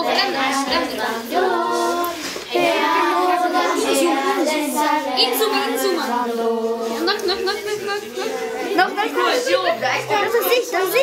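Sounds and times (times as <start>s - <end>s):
boy singing: 0.0s - 9.4s.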